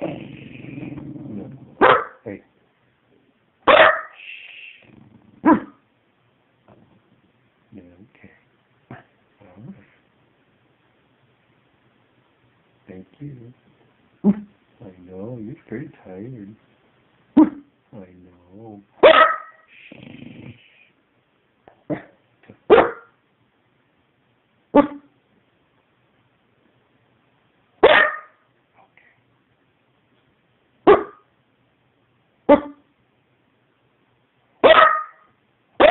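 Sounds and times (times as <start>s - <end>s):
dog barking: 1.8s - 2.2s, 3.7s - 4.2s, 5.4s - 5.8s, 17.4s - 17.6s, 19.0s - 19.7s, 21.9s - 23.2s, 24.7s - 25.1s, 27.8s - 28.4s, 30.8s - 31.3s, 32.5s - 32.8s, 34.6s - 35.9s.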